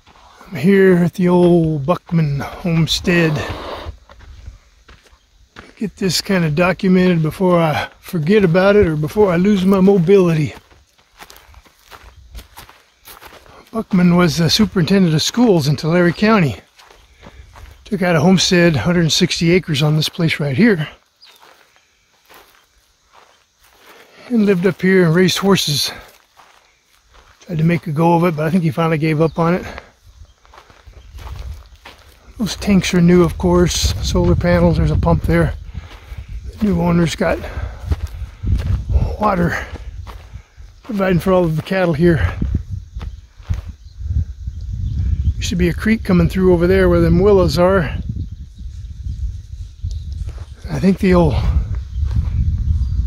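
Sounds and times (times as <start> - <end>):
wind buffeting microphone: 0.0 - 19.6, 29.2 - 53.0
faint footsteps on dry grass: 0.0 - 53.0.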